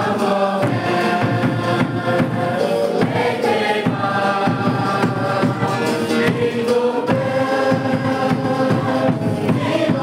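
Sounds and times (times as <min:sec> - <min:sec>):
congregation singing a hymn: 0:00.0 - 0:10.0
steady beat: 0:00.0 - 0:10.0.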